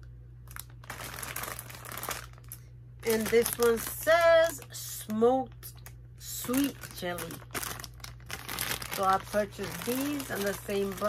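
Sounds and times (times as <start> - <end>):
plastic snack bags crinkling: 0.4 - 11.0.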